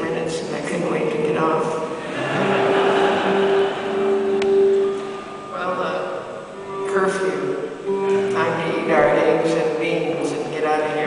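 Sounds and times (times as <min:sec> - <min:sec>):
acoustic music long held note: 0:01.8 - 0:11.0.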